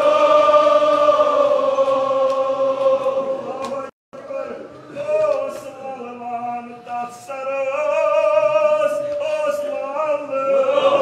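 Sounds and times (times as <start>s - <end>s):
man chanting a lament: 3.5s - 11.0s.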